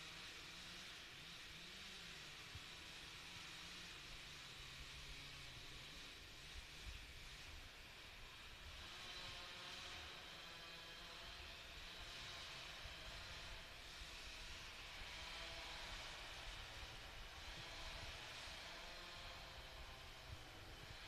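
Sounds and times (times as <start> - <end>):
distant chainsaw running: 0.0 - 21.0.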